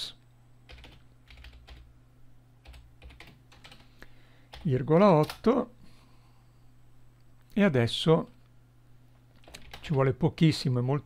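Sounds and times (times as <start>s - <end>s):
computer keyboard keystrokes: 0.7s - 1.8s, 2.6s - 3.9s, 9.4s - 10.0s.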